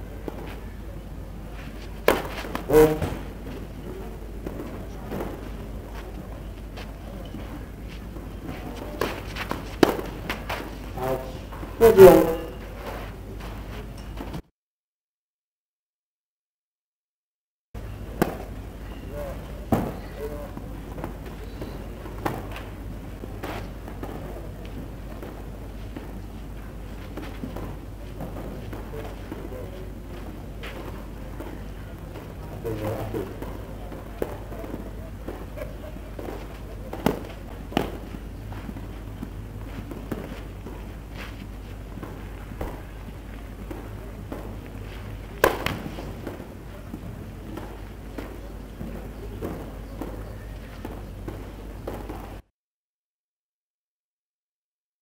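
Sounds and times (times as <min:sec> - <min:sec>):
faint spectator chatter: 0:00.0 - 0:14.2, 0:17.9 - 0:52.4
steady low hum: 0:00.0 - 0:14.4, 0:17.8 - 0:52.4
tennis ball pops: 0:02.0 - 0:03.2, 0:09.0 - 0:10.4, 0:45.4 - 0:50.2.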